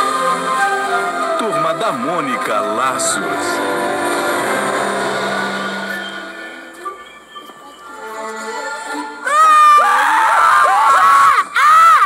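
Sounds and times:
children screaming: 0:09.2 - 0:12.0.

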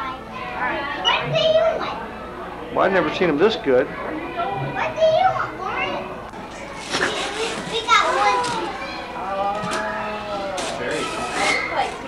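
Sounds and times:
children talking and calling out: 0:00.0 - 0:02.6, 0:03.8 - 0:12.0.

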